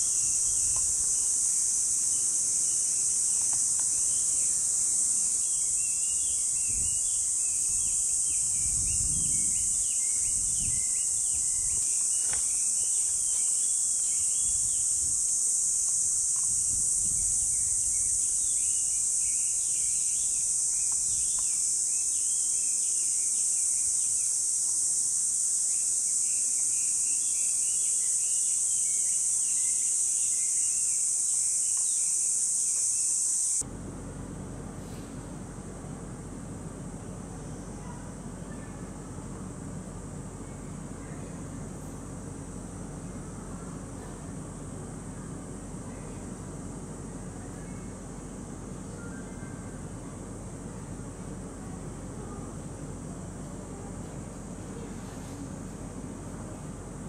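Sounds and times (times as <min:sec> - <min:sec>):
cicadas droning: 0:00.0 - 0:57.0
low rumbles: 0:33.6 - 0:57.0.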